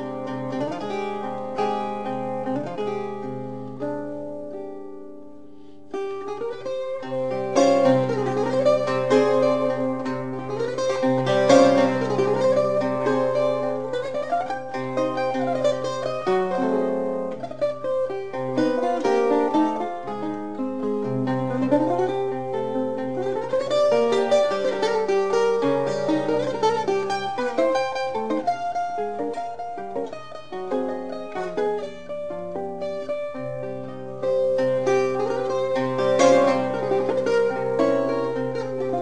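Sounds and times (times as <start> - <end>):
plucked guitar music: 0.0 - 39.0.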